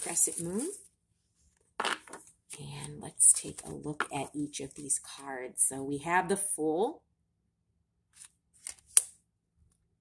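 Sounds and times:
card snap: 0:08.6 - 0:09.1.

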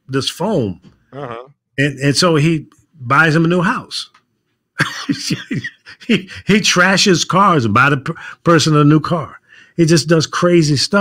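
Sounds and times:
man laughing: 0:04.8 - 0:06.5.

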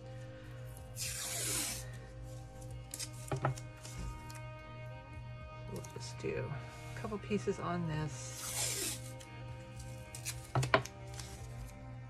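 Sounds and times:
background music: 0:00.0 - 0:12.0
tape ripping off roll: 0:01.0 - 0:01.8, 0:08.3 - 0:09.3, 0:10.1 - 0:11.7.

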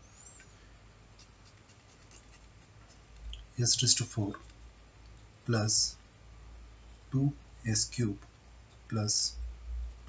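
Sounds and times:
pen scratching on paper: 0:01.2 - 0:03.2.

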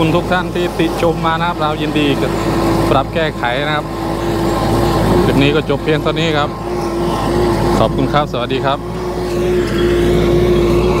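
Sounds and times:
tractor diesel engine under load: 0:00.0 - 0:11.0.

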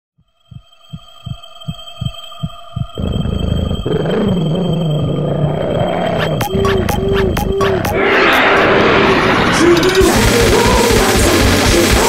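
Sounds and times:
steady high drone: 0:00.3 - 0:12.0
low heartbeat-like thumps: 0:00.4 - 0:03.9
dense low layer: 0:00.5 - 0:11.9.

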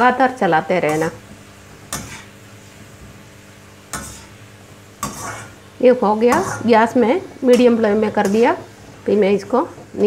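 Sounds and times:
oil sizzling: 0:00.0 - 0:10.0
metal skimmer scraping an iron pan: 0:05.0 - 0:05.6, 0:06.2 - 0:06.8.

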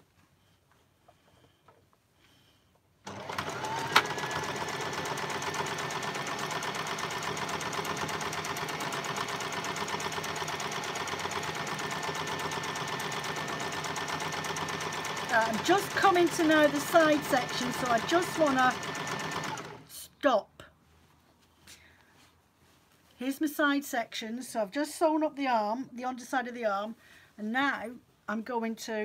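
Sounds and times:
sewing machine running: 0:03.0 - 0:19.9.

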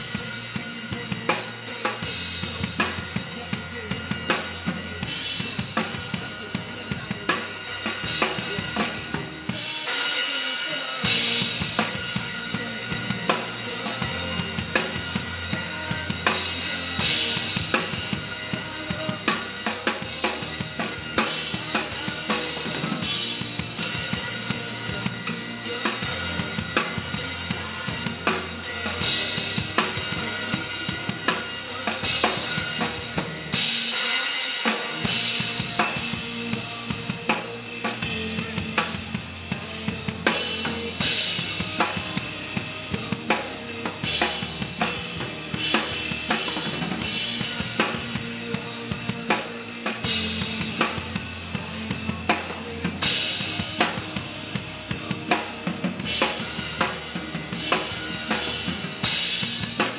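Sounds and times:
drum kit playing pop beat: 0:00.0 - 0:59.9
recorded backing track: 0:00.0 - 0:59.9.

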